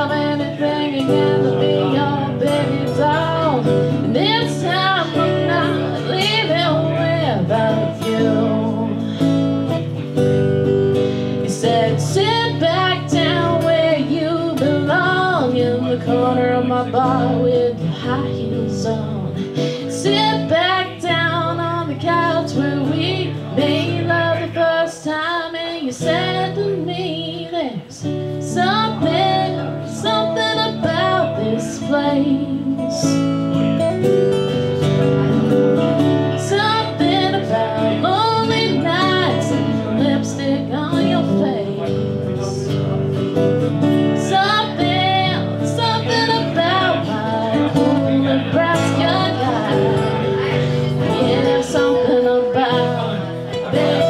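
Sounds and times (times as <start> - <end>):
woman singing: 0.0 - 10.3, 10.9 - 33.9, 35.8 - 42.8, 43.8 - 54.0
acoustic guitars strummed: 0.0 - 54.0.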